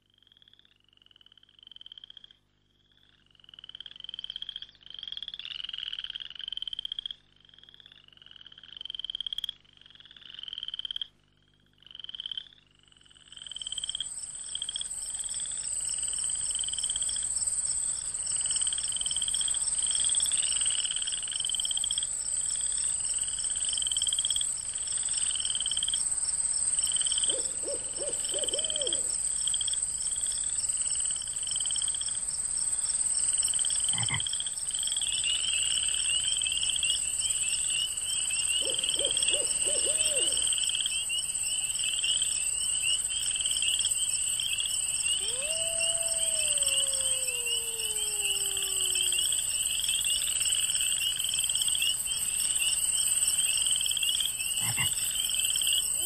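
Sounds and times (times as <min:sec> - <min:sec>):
frogs croaking: 0:00.0 - 0:56.0
high-pitched insect drone: 0:38.8 - 0:56.0.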